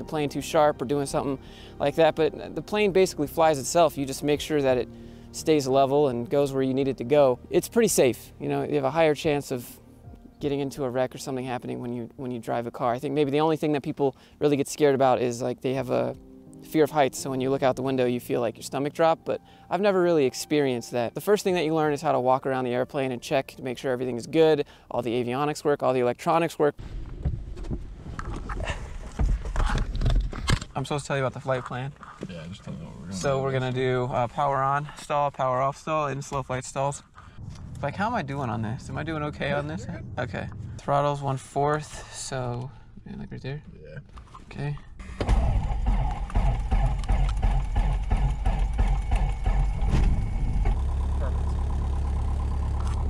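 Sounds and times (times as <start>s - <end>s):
aircraft engine starting and idling: 45.0s - 53.0s.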